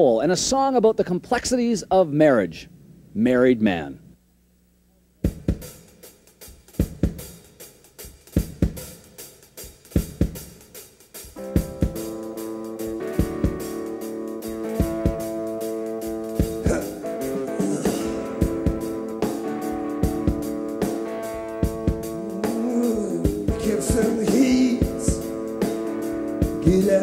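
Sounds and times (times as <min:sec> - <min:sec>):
drum kit playing: 0:05.2 - 0:27.0
electric guitar chords: 0:11.3 - 0:27.0.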